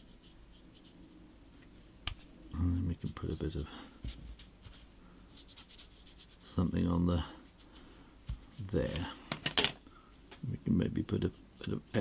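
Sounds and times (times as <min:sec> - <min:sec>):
brush scratching on paper: 0:00.0 - 0:01.2, 0:02.2 - 0:08.9.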